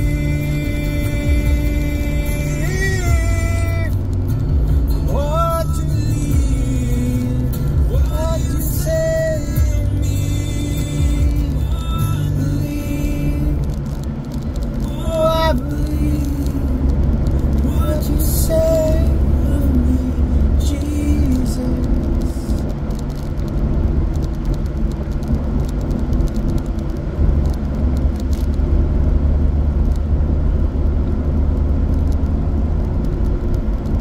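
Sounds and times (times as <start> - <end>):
car cabin road and engine rumble: 0.0 - 34.0.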